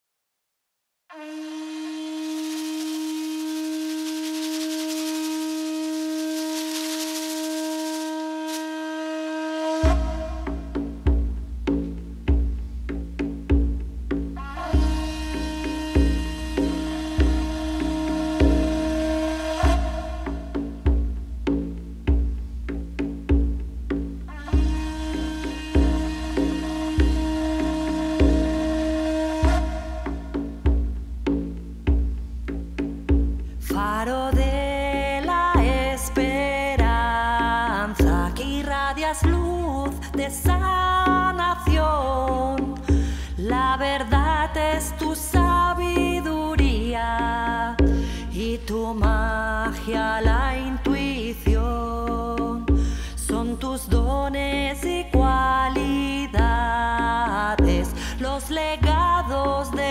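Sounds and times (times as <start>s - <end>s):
conch shell blown: 1.1s - 10.8s, 14.4s - 20.6s, 24.3s - 30.7s
music with low drum beat: 9.9s - 15.0s, 19.6s - 28.4s, 29.5s - 39.9s, 40.5s - 59.9s
breath noise: 33.3s - 33.6s, 42.8s - 43.4s, 47.8s - 48.4s, 52.7s - 53.3s, 57.9s - 58.2s.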